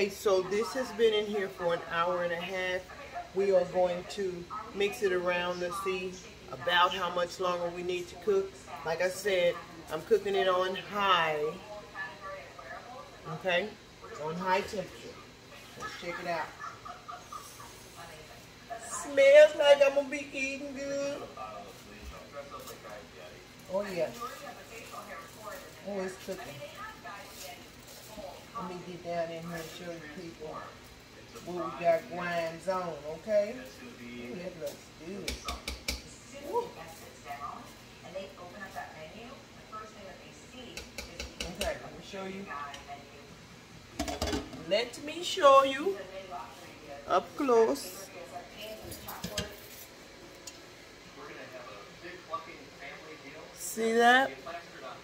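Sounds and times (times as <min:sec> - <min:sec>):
kitchen handling noise: 0:44.0 - 0:44.6.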